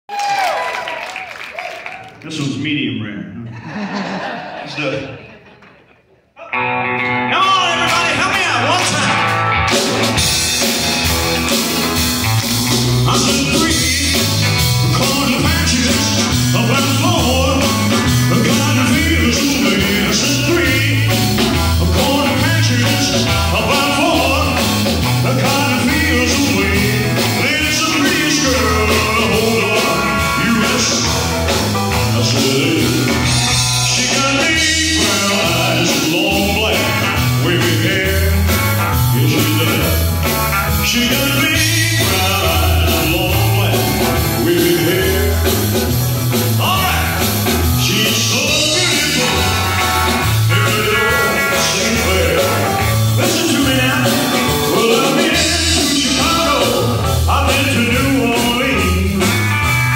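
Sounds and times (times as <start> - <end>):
rock and roll band: 0.1 - 3.0, 6.4 - 59.9
drums: 6.4 - 59.9
electric guitar: 6.4 - 59.9
bass: 6.6 - 59.9
man singing into microphone: 13.0 - 31.4, 32.0 - 40.1, 40.7 - 45.8, 46.5 - 59.5.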